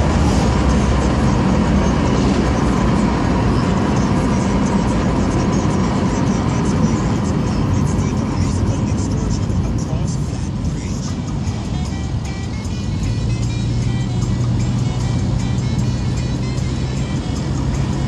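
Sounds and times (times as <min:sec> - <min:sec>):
car running with road noise: 0:00.0 - 0:18.0
music with singing voice: 0:01.8 - 0:18.0.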